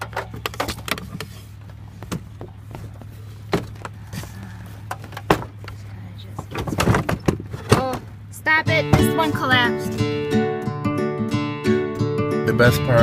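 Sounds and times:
air conditioner knocking and clunking: 0.0s - 1.3s, 2.0s - 4.0s, 4.8s - 9.6s
steady low hum: 0.0s - 10.8s.

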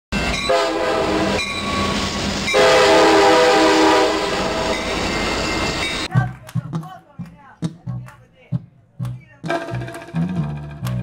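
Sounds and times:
train rumbling past: 0.2s - 6.2s
train horn blasts: 0.4s - 1.5s, 2.5s - 4.9s.

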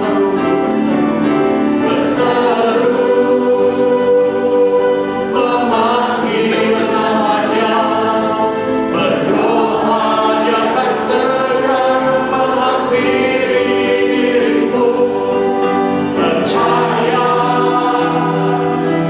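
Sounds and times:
congregation singing: 0.0s - 19.0s
piano and keyboard: 0.0s - 19.0s.

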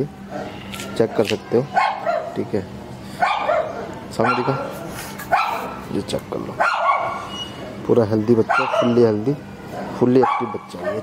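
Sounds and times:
puppies barking: 0.3s - 2.4s, 3.2s - 5.9s, 6.6s - 7.6s, 8.3s - 11.0s.

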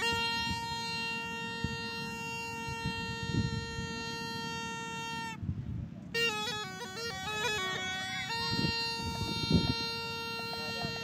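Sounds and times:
reedy wind instrument playing: 0.0s - 11.0s.

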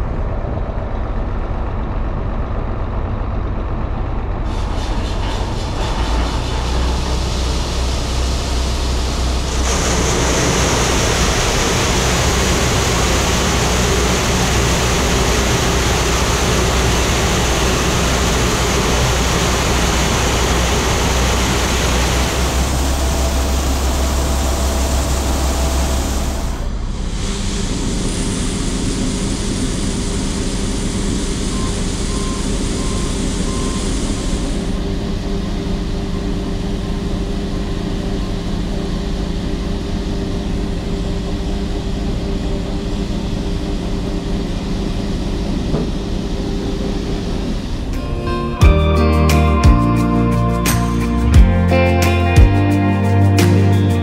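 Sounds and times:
combine harvester rushing noise: 0.0s - 54.0s
low machine hum: 0.0s - 54.0s.

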